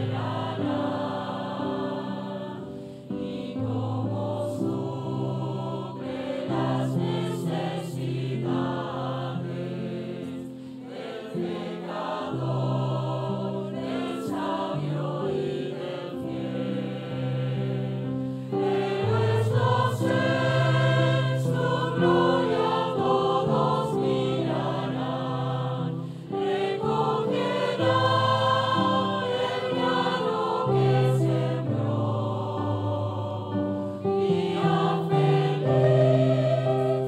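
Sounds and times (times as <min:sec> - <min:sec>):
mixed choir singing a hymn: 0:00.0 - 0:37.0.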